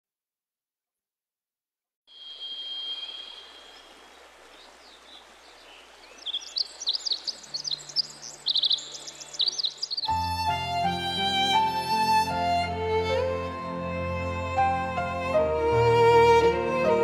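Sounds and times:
outdoor hiss: 2.1 - 10.2
songbirds chirping: 2.2 - 15.2.

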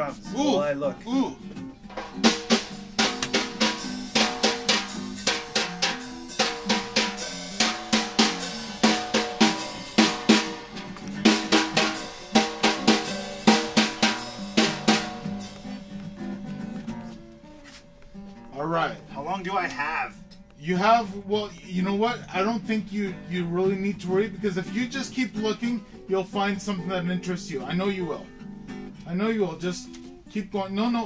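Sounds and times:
fast snare and bass drum beat: 1.9 - 15.8.

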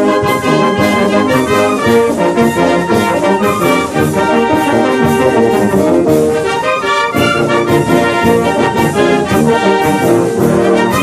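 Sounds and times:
brass band music: 0.0 - 11.0.

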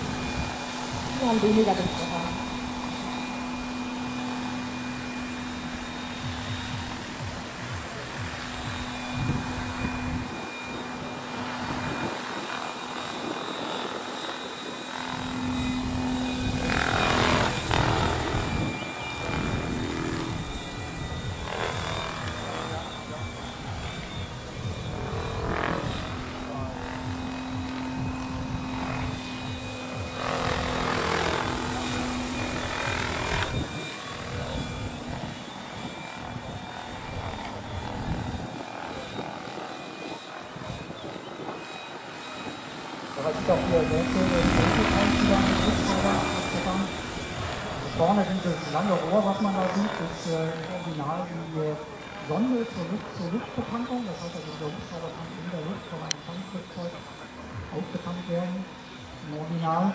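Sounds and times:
model helicopter rotor whine: 0.0 - 59.9.

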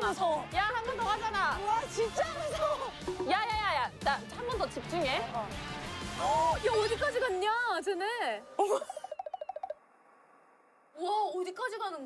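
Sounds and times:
comic trembling sound effect: 8.6 - 9.8.

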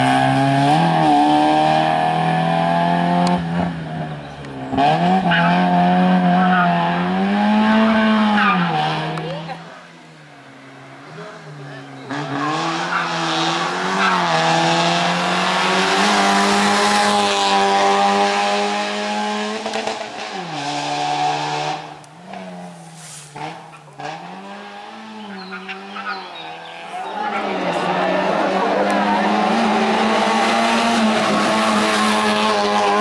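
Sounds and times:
race car engine revving: 0.0 - 33.0.

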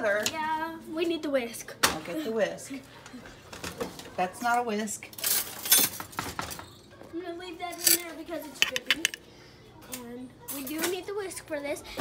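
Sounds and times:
dishes and utensils clinking: 5.1 - 6.8, 7.7 - 9.2.

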